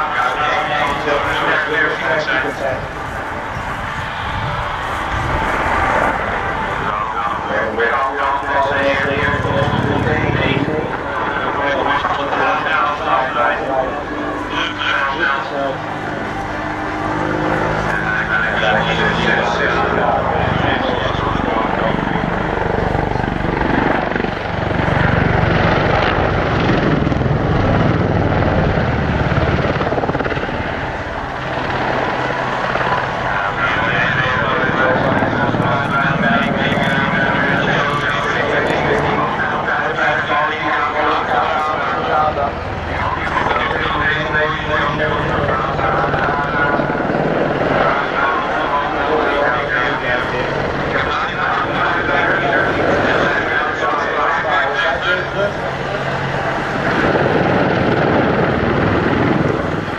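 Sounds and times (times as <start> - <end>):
helicopter rotor and engines: 0.0 - 59.9
person talking: 6.8 - 15.8, 33.2 - 47.1.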